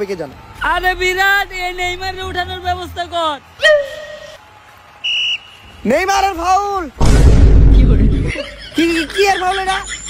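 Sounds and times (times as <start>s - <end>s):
loud explosion-like blast: 7.0s - 8.3s.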